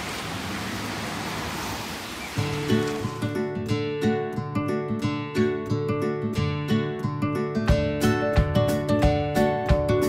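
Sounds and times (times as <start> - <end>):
steady outdoor hiss: 0.0 - 3.5
strummed acoustic guitar music: 2.4 - 10.0.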